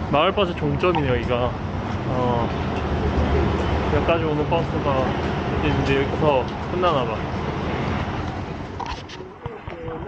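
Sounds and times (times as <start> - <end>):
street ambience: 0.0 - 10.0
vehicle engine rumble: 0.0 - 10.0
faint voices: 8.8 - 10.0.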